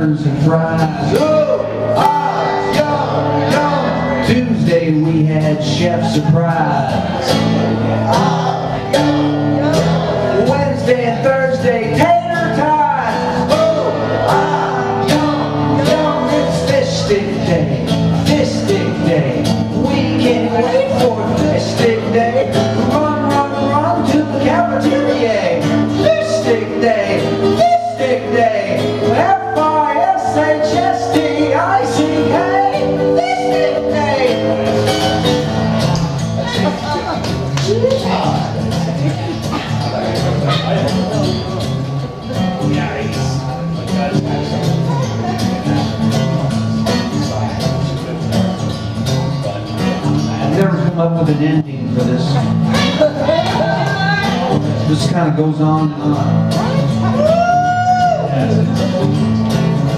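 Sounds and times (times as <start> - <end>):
man singing: 0.0 - 48.4, 49.3 - 59.9
strummed acoustic guitar: 0.0 - 59.9.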